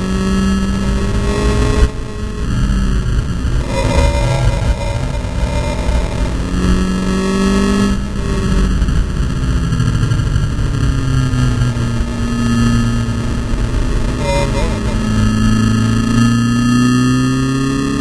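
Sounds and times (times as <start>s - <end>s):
race car engine at speed: 0.0s - 18.0s
wind and road noise: 0.0s - 18.0s.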